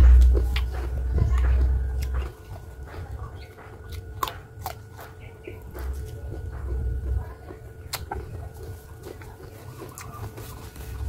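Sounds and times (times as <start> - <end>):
crisp mango being bitten and chewed: 0.0 - 11.0.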